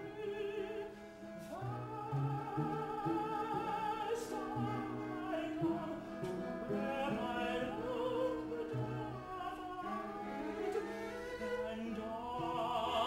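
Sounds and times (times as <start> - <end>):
chamber ensemble bowed strings: 0.0 - 13.0
male opera singer: 0.0 - 13.0.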